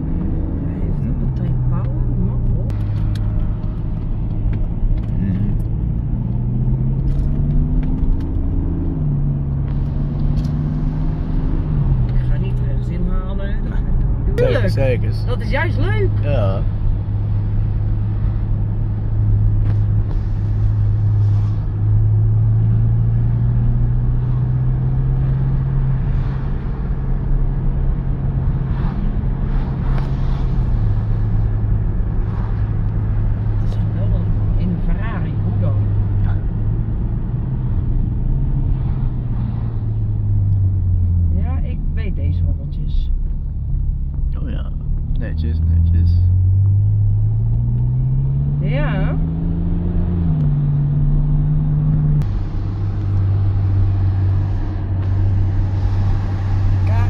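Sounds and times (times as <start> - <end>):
car engine drone in cabin: 0.0 - 57.0.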